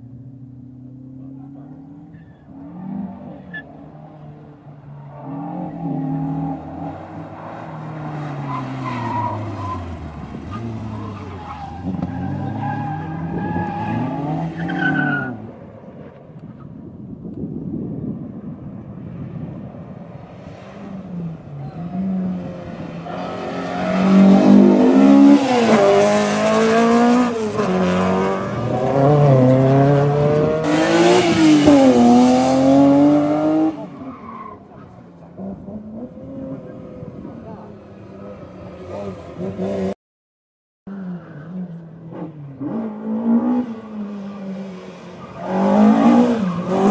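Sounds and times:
car engines revving: 0:00.0 - 0:40.0, 0:40.9 - 0:46.9.

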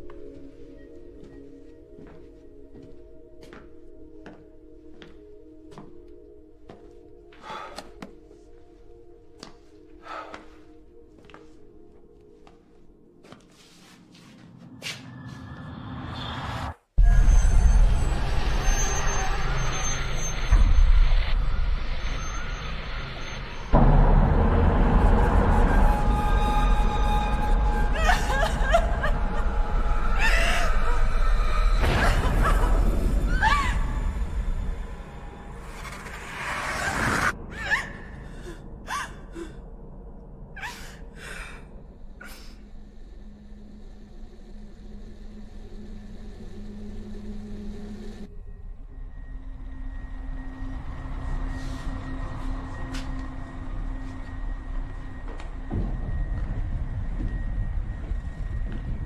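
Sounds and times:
dark film score swell: 0:00.0 - 0:59.0
deep rumbling drone: 0:15.6 - 0:59.0.

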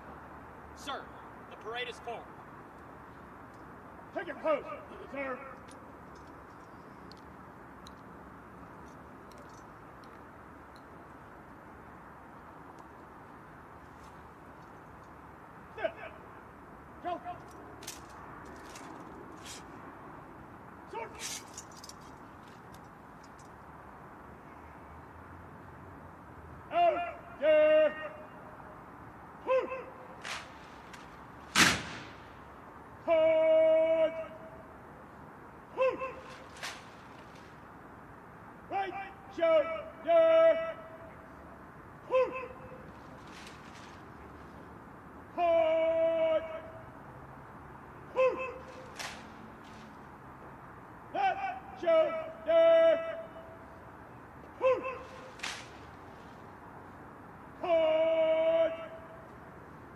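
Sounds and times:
shouted drill commands: 0:04.2 - 0:05.5, 0:15.7 - 0:16.3, 0:17.0 - 0:17.5, 0:20.9 - 0:21.3, 0:26.7 - 0:28.4, 0:33.0 - 0:34.6, 0:38.7 - 0:41.1, 0:45.3 - 0:46.9, 0:51.1 - 0:53.5, 0:57.6 - 0:59.1
loud sharp crack: 0:30.2 - 0:32.4, 0:36.2 - 0:37.5, 0:48.6 - 0:49.8, 0:54.9 - 0:56.0.

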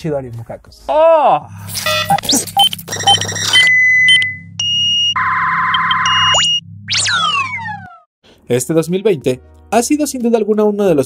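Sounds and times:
short high synth beeps: 0:01.8 - 0:07.6
fast warbling buzz: 0:05.2 - 0:08.1.

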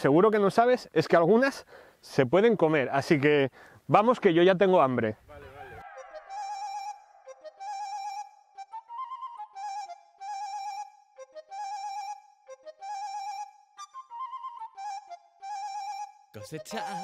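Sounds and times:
high instrumental melody: 0:06.3 - 0:17.0.

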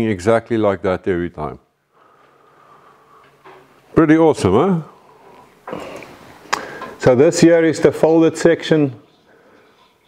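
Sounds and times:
man talking: 0:00.0 - 0:01.7, 0:03.9 - 0:05.0, 0:07.0 - 0:09.0.

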